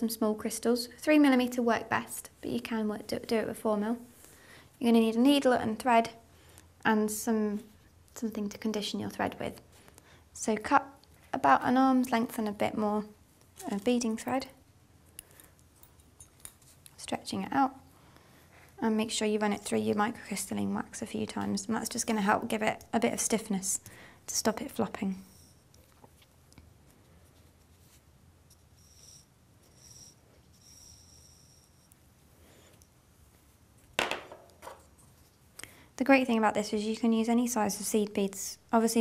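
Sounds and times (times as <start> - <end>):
knocks on tabletop: 34.0 - 34.8.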